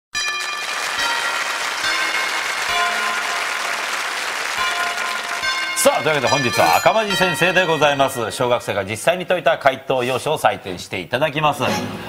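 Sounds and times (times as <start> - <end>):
audience applauding: 0.2 - 6.9.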